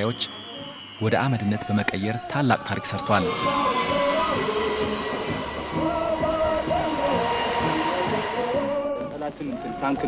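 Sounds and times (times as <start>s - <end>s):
jet engine whine and rush: 0.0s - 10.0s.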